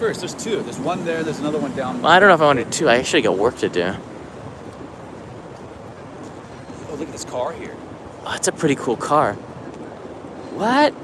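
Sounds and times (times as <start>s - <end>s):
city street background noise: 0.0s - 11.0s.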